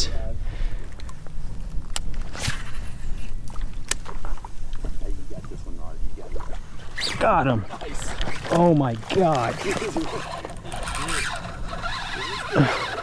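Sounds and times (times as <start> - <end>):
water lapping at kayak hull: 3.0 - 5.6, 6.2 - 13.0
fishing gear clicks and knocks: 7.7 - 13.0.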